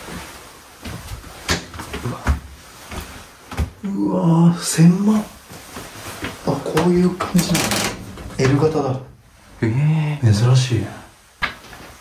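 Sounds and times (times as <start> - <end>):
folding door clacks and knocks: 7.2 - 9.0
heavy door thump: 7.4 - 9.3.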